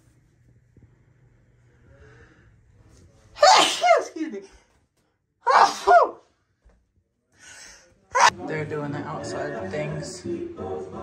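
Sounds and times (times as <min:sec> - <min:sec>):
person sneezing: 0:03.4 - 0:04.2, 0:05.5 - 0:06.2.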